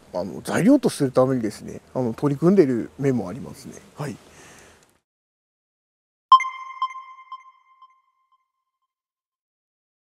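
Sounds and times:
electronic chime echoing: 6.3s - 8.2s.

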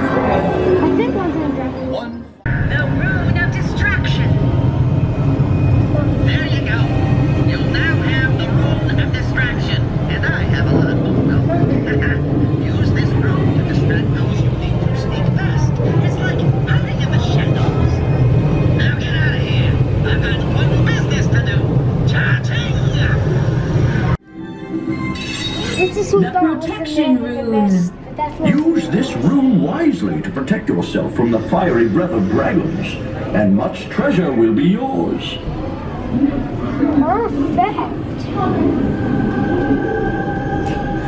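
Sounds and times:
indistinct voices chattering: 0.0s - 41.0s
steady low rumble: 2.4s - 24.2s.

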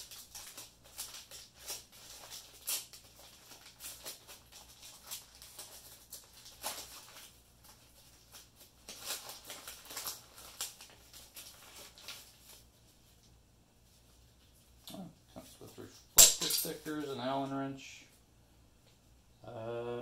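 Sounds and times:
plastic packaging crinkling: 0.0s - 13.3s.

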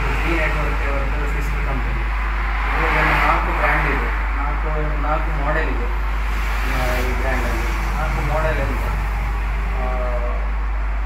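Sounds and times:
man speaking: 0.0s - 2.1s, 2.7s - 6.0s, 6.6s - 9.1s, 9.7s - 10.5s
steady low hum: 0.0s - 11.0s.

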